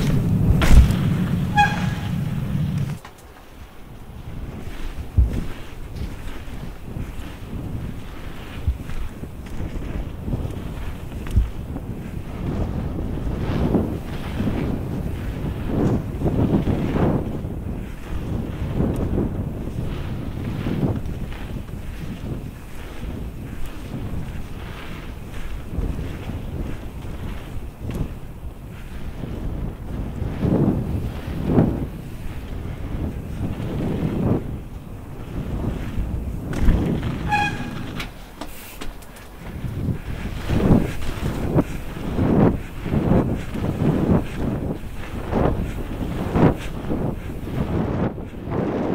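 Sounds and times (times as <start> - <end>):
bike tyres rolling on wet track: 0.0 - 48.9
wind rushing over microphone: 0.0 - 48.9
high squeak: 1.4 - 2.5, 37.2 - 38.1.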